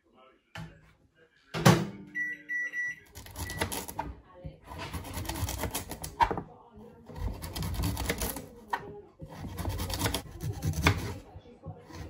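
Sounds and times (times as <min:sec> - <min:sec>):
microwave oven beeping: 0:02.0 - 0:04.0.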